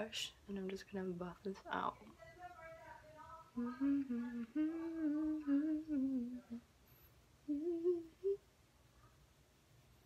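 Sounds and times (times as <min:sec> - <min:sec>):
woman humming: 0:03.6 - 0:06.6, 0:07.4 - 0:08.5.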